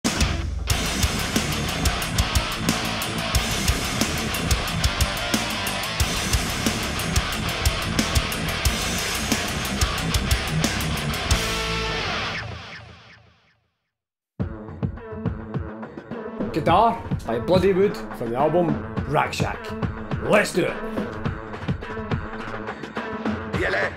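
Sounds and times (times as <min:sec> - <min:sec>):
drums: 0:00.0 - 0:12.8, 0:14.4 - 0:23.9
distorted electric guitar riffs: 0:00.1 - 0:13.3.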